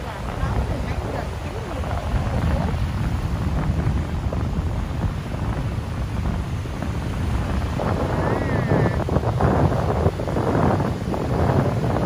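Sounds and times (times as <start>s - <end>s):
waves breaking on beach: 0.0s - 12.0s
wind buffeting microphone: 0.0s - 12.0s.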